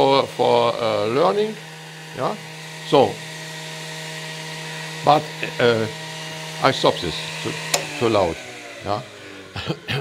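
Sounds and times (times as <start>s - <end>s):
motor-generator electrical hum: 0.0s - 10.0s.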